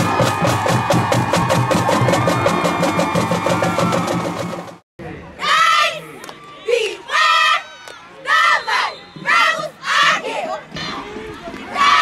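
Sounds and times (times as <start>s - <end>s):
cheerleaders chanting in unison: 5.4s - 12.0s.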